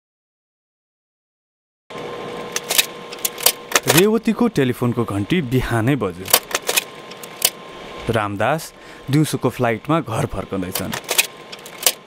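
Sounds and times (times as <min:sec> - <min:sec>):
faint hum: 0:01.9 - 0:12.0
person speaking: 0:03.7 - 0:06.6, 0:07.9 - 0:11.2
sharp clicks: 0:10.7 - 0:12.0.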